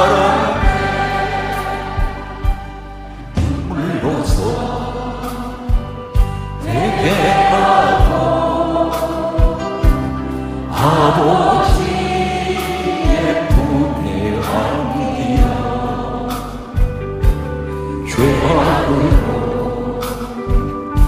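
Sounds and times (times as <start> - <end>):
low drum beats: 0.0 - 12.2
choir singing a hymn: 0.0 - 21.0
instrumental accompaniment: 0.0 - 21.0.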